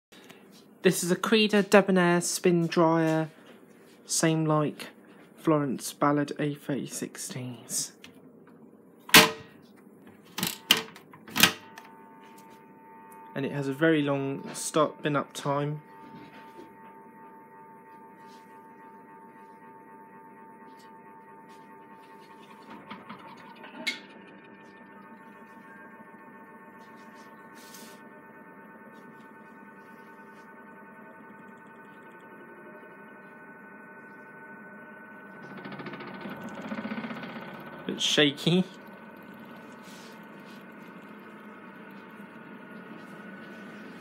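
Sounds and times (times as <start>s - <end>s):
spin dryer motor whine: 9.1s - 44.0s
rough machine rattle: 22.4s - 25.4s, 35.2s - 44.0s.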